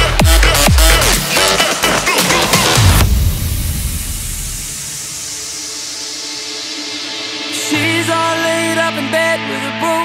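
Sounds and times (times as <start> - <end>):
deep bass tail: 0.0 - 5.7
dance track: 0.0 - 10.0
white-noise sweep: 0.1 - 8.9.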